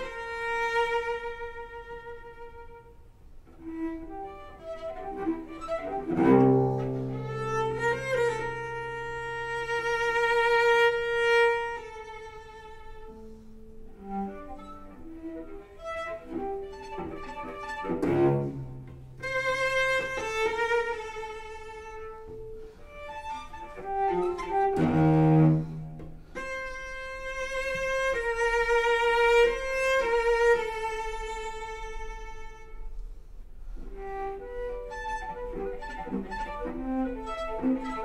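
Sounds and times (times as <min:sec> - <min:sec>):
bowed cello notes: 0:00.0 - 0:38.0
forceful cello strokes: 0:00.0 - 0:38.0.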